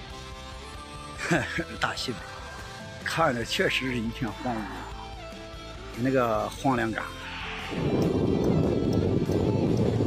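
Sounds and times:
background music: 0.0 - 10.0
wind buffeting microphone: 7.4 - 10.0.

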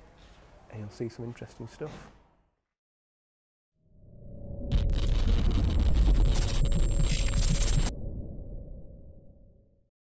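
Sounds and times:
deep low swell: 3.9 - 9.8
harsh crackling static: 4.7 - 7.9.

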